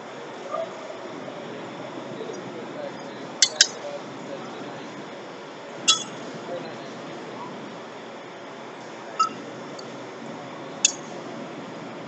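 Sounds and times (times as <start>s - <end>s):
workshop background noise: 0.0s - 12.0s.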